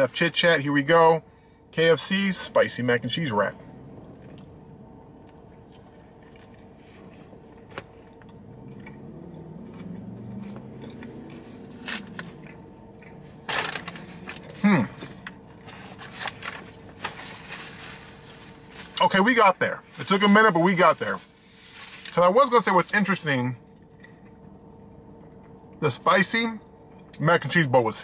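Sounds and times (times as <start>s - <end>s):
person chewing crunchy food: 4.0s - 16.3s.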